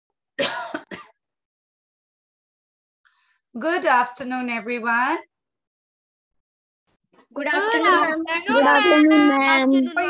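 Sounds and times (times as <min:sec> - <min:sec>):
person clearing throat: 0:00.4 - 0:01.2.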